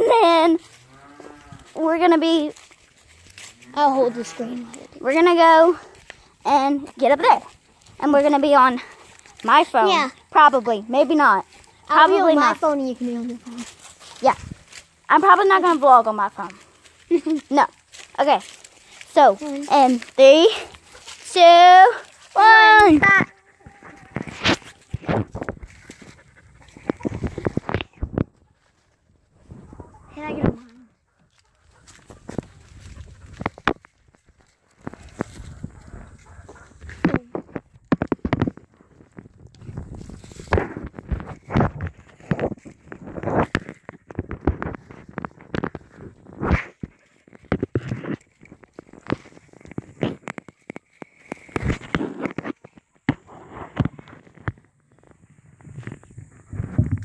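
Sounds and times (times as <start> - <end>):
child's voice: 0.0 - 0.6, 1.8 - 2.6, 3.7 - 14.4, 15.1 - 18.5, 19.1 - 24.0, 29.9 - 30.9.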